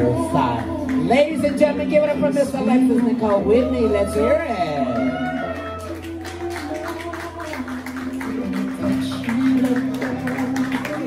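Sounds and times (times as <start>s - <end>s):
music with held notes and bass: 0.0s - 11.0s.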